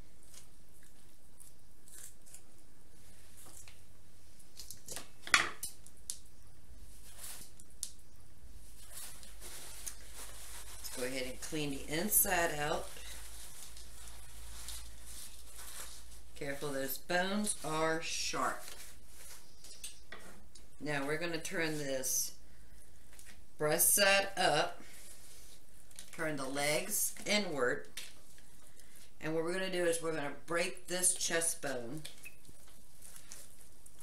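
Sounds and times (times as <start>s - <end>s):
person speaking: 10.8s - 13.2s, 16.4s - 18.8s, 20.8s - 22.4s, 23.6s - 24.8s, 26.2s - 27.9s.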